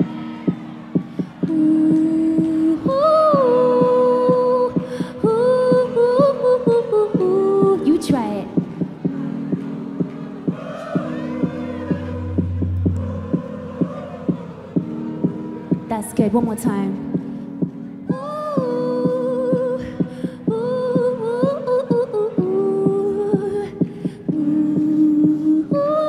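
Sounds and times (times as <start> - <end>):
crowd singing: 0.0 - 16.4
woman singing: 1.4 - 9.4, 14.8 - 17.3, 18.0 - 26.0
held synth chord: 11.0 - 16.2.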